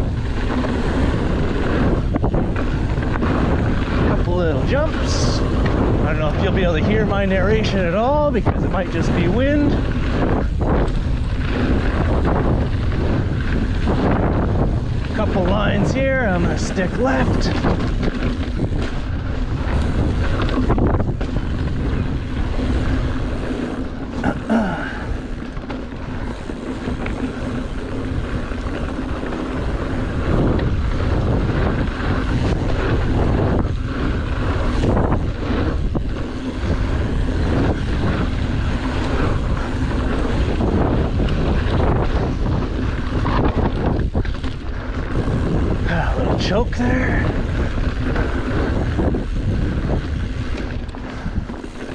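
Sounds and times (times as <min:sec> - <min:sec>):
tyres rolling on dirt: 0:00.0 - 0:51.9
wind buffeting microphone: 0:00.0 - 0:51.9.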